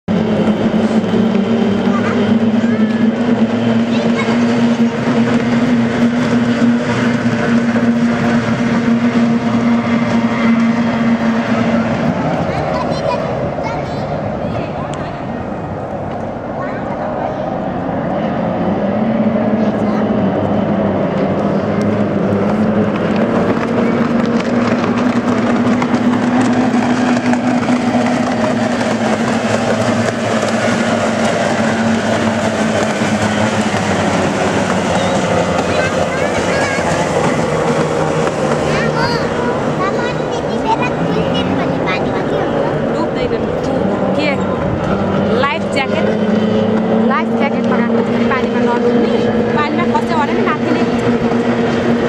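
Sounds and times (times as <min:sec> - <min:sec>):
powerboat engines drone: 0:00.0 - 0:52.0.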